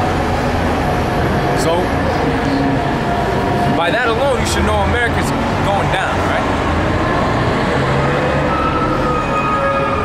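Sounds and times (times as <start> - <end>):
heavy vehicle rumble: 0.0 - 10.0.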